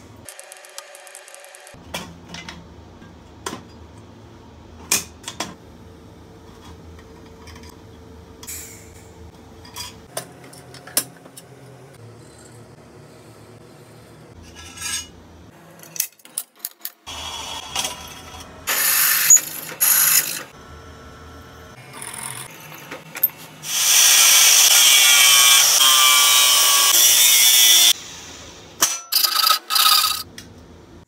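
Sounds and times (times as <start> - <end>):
drill press cutting metal: 29.1 - 30.2.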